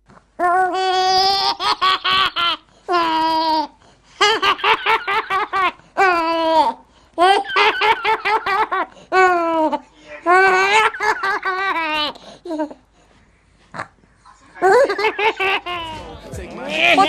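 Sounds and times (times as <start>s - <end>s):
baby laughing: 0.4s - 12.8s, 14.6s - 16.0s.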